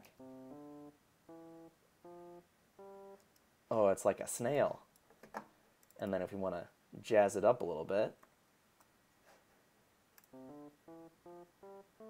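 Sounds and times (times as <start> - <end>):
electric piano single notes: 10.3 - 12.0.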